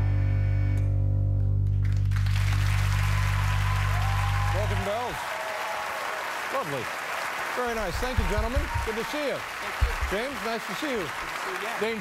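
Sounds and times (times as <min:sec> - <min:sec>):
held low bass note: 0:00.0 - 0:02.9
audience applause: 0:01.8 - 0:12.0.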